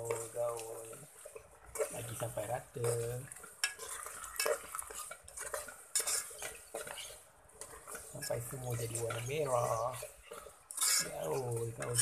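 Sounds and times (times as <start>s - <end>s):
light sizzle: 0.0s - 12.0s
utensil scraping a pot: 0.0s - 12.0s.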